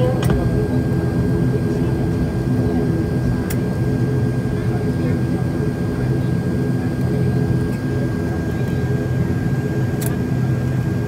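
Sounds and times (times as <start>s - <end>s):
turboprop engines low drone: 0.0s - 11.0s.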